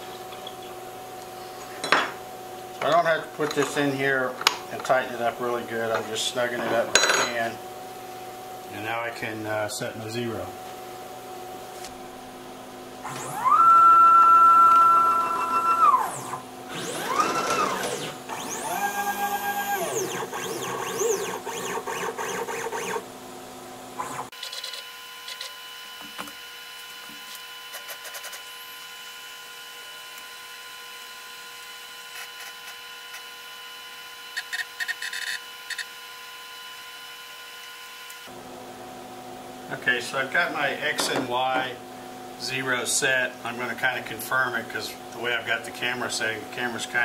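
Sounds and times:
faint steady motor hum: 0.0s - 47.0s
stepper motors whining: 13.0s - 23.1s.

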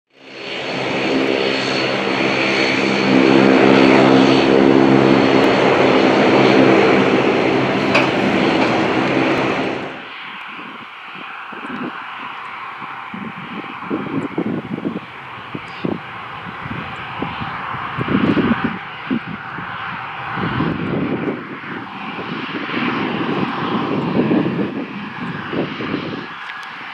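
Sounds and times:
aircraft engine droning: 0.1s - 26.9s
jet engines at taxi idle: 0.1s - 26.9s.

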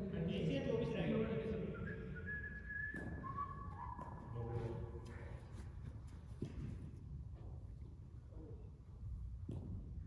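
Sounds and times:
person whistling: 1.8s - 4.0s.

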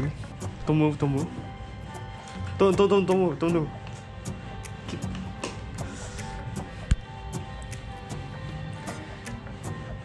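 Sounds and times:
background music with held tones: 0.0s - 10.0s
light ticking beat: 1.9s - 10.0s.

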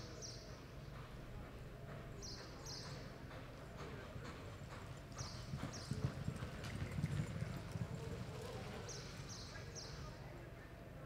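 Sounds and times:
horse hoofbeats on dirt: 1.0s - 9.9s.

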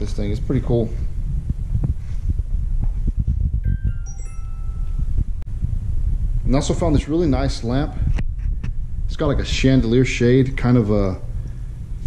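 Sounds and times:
low rumble: 0.0s - 12.0s
bell-like chime notes: 3.7s - 5.4s.

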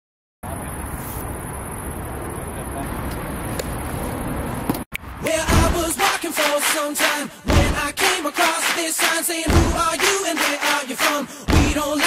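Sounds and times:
constant high hiss: 0.4s - 4.6s.

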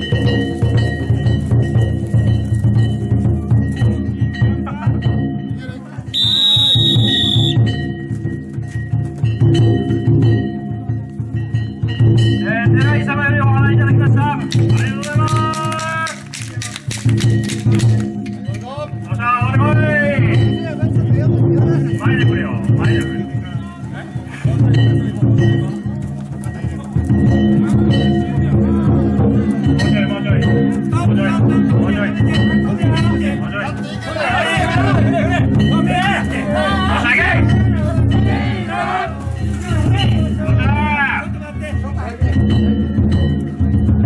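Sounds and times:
festival drum and gongs: 0.0s - 44.0s
shrill whistle blast: 6.1s - 7.7s
voices: 18.4s - 42.8s.

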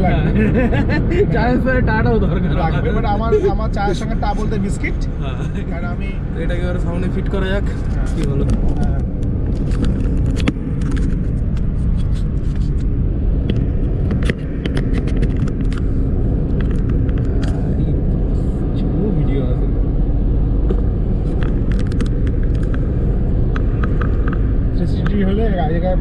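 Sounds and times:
road and engine rumble: 0.0s - 26.0s.

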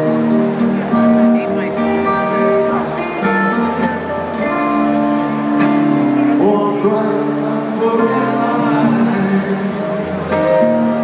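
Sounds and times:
live rock band with guitar: 0.0s - 11.0s.

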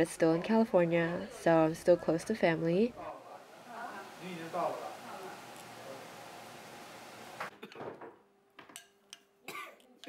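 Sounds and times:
steady hiss: 3.2s - 7.5s.

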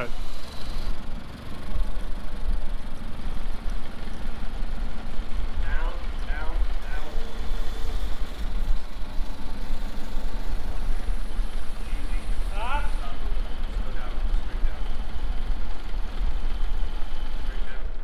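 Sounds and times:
forklift engine idling: 0.0s - 18.0s.

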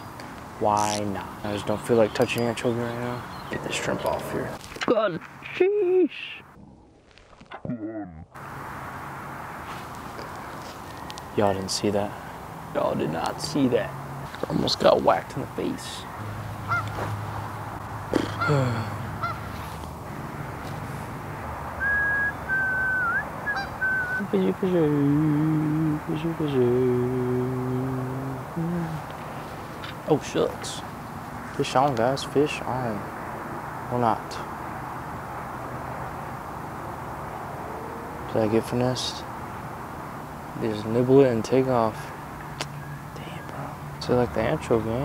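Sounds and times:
person humming: 18.2s - 19.0s, 24.1s - 29.1s
high whistled tone: 21.8s - 24.3s.

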